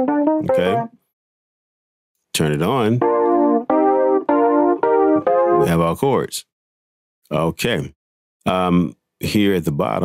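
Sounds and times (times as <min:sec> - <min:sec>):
electric piano chords: 0:00.0 - 0:00.9, 0:03.0 - 0:05.8.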